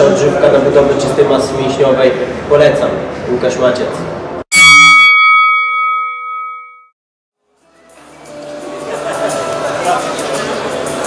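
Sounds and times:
bell-like chime ringing: 0:04.5 - 0:07.0.

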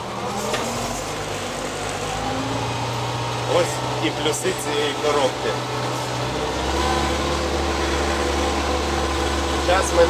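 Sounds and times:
tractor diesel engine running: 0:00.0 - 0:10.0.

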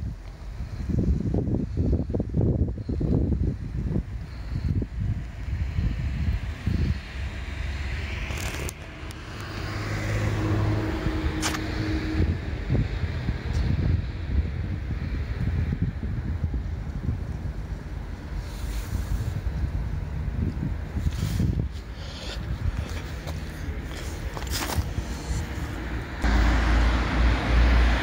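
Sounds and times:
wind buffeting microphone: 0:00.0 - 0:28.0
engine humming: 0:16.6 - 0:28.0.

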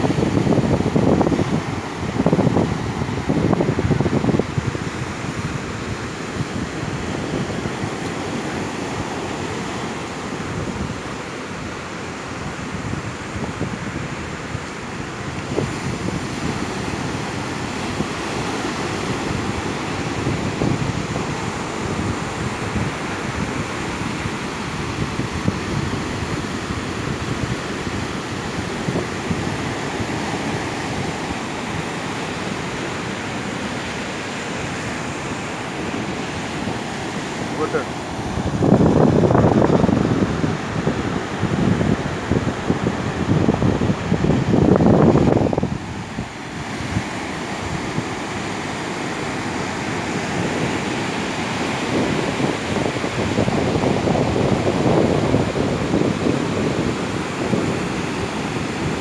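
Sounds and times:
waves breaking on a beach: 0:00.0 - 0:59.0
wind buffeting the microphone: 0:00.0 - 0:59.0.

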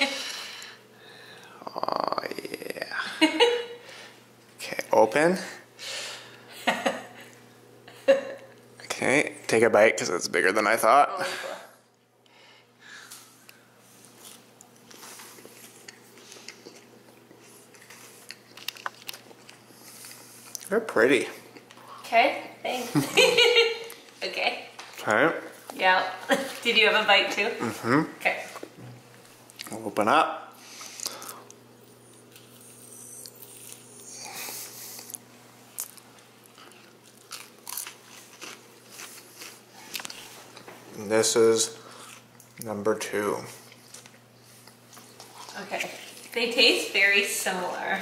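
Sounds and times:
person chewing crunchy food: 0:13.9 - 0:20.7, 0:30.8 - 0:40.7, 0:41.8 - 0:42.7, 0:43.6 - 0:46.4.

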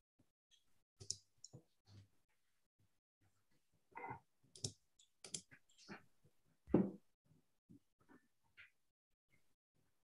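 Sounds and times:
computer clicks and taps: 0:00.5 - 0:01.7, 0:04.5 - 0:05.6.

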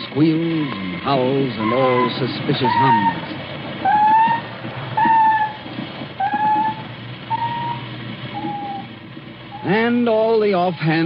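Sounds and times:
short high sonar tones: 0:06.2 - 0:08.9.

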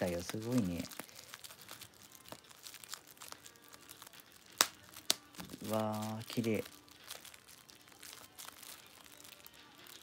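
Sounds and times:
bubble wrap crinkling: 0:00.0 - 0:10.0
bubble wrap popping: 0:00.0 - 0:10.0.

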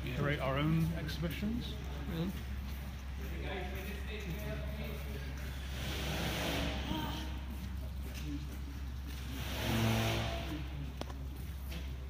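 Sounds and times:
machine motor: 0:05.6 - 0:07.0, 0:09.1 - 0:11.0.

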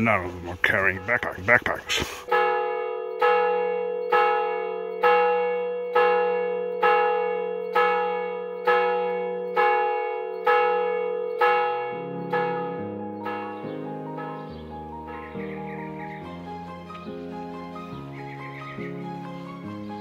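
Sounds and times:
church bell tolling: 0:02.3 - 0:19.8
instrumental music: 0:07.6 - 0:20.0.

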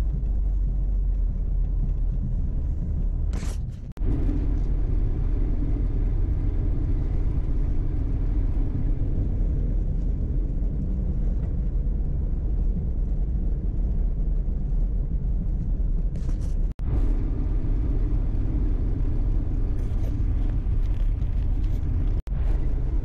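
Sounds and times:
engine and tyres rumbling: 0:00.0 - 0:23.0.

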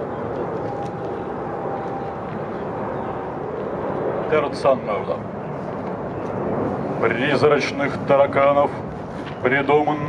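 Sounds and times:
outdoor background rumble: 0:00.0 - 0:10.0.

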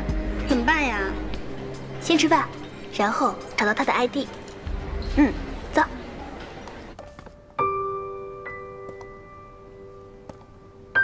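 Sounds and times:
soft piano chords: 0:06.4 - 0:11.0.

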